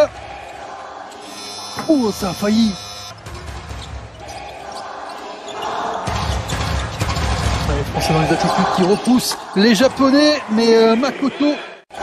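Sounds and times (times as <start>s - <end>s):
arena buzzer: 1.2s - 3.2s.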